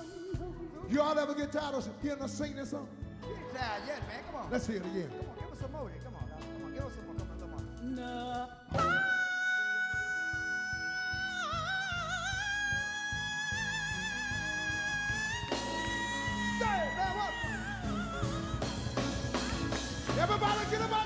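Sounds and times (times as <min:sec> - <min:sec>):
backing band: 0:00.0 - 0:21.0
man singing falsetto with vibrato: 0:08.0 - 0:21.0.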